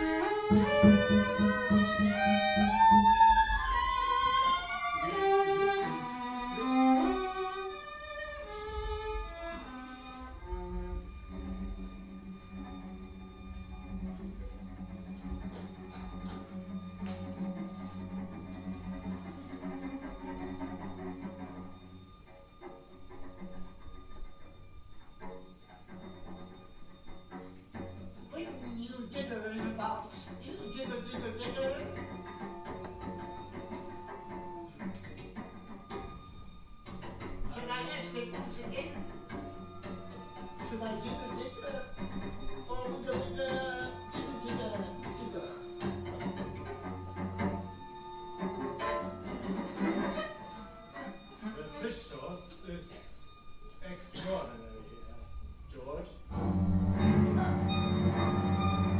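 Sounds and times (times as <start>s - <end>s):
bowed double bass: 0.0s - 53.8s, 54.5s - 58.9s
bowed cello: 0.0s - 58.9s
bowed viola: 0.0s - 58.9s.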